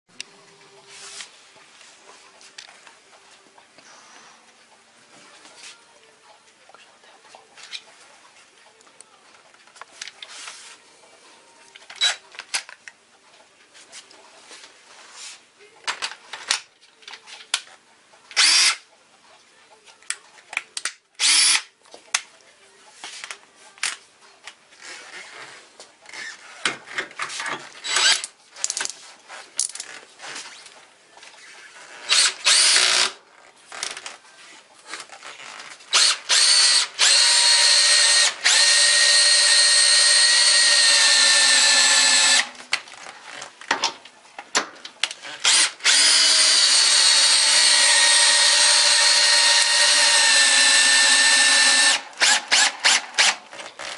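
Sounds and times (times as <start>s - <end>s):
cordless drill whirring: 18.4s - 18.8s, 21.2s - 21.6s, 27.8s - 28.3s, 32.1s - 33.2s, 35.9s - 42.5s, 45.4s - 53.9s.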